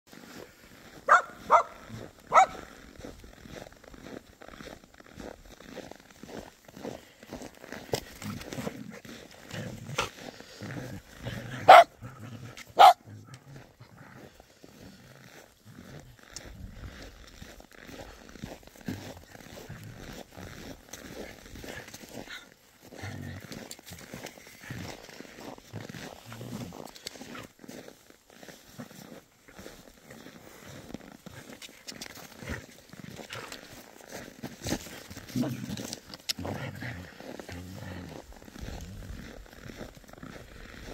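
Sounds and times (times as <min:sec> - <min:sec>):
soft low dog sounds: 0:00.2 - 0:40.9
dog barking: 0:01.1 - 0:02.7, 0:11.6 - 0:12.0, 0:12.8 - 0:13.1.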